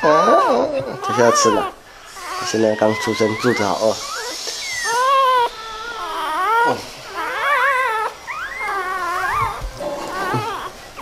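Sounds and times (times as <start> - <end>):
puppy whining and squealing: 0.0 - 11.0.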